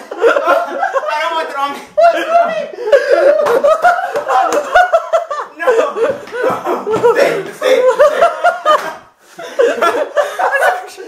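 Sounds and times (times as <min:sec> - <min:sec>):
young man laughing loudly: 0:02.0 - 0:11.0.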